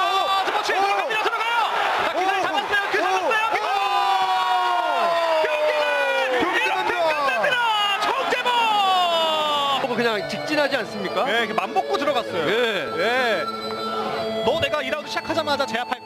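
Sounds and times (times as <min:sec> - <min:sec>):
cheering crowd: 0:00.0 - 0:10.2
men yelling excitedly: 0:00.0 - 0:12.4.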